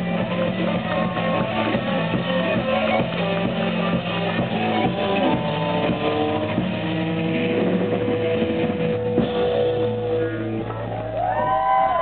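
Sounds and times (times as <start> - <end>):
distorted electric guitar drone: 0.0 - 12.0
sustained bass tone: 0.0 - 12.0.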